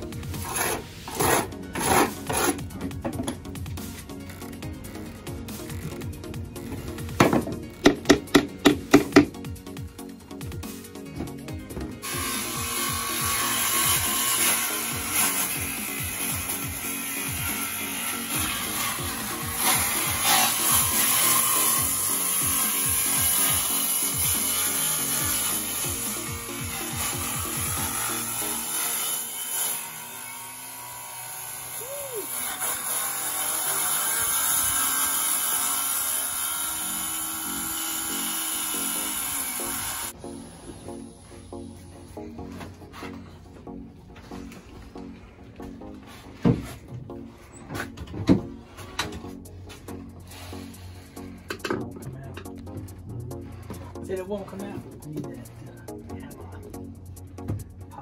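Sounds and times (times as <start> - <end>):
background music with steady beat: 0.0 - 33.0, 33.9 - 58.0
power saw buzzing: 11.8 - 41.6.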